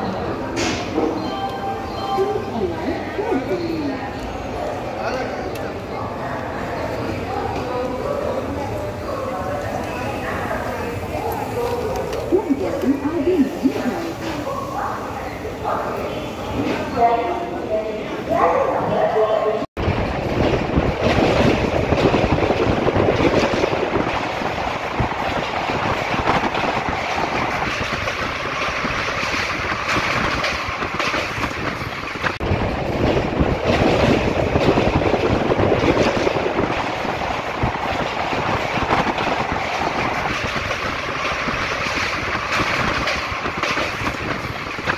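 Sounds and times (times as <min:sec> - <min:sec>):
train wheels on rails: 0:00.0 - 0:17.0, 0:19.8 - 0:44.9
train clattering over track: 0:00.2 - 0:02.1, 0:19.8 - 0:44.9.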